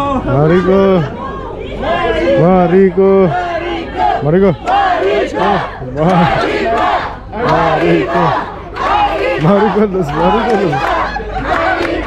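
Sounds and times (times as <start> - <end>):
group singing in unison: 3.2 - 12.0.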